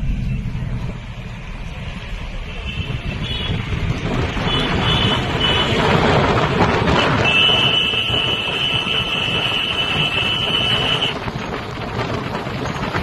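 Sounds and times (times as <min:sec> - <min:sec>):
road noise of passing tractors: 0:00.0 - 0:13.0.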